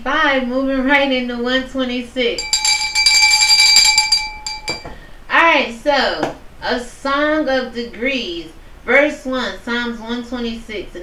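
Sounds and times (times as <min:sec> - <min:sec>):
bell ringing: 0:02.4 - 0:05.0.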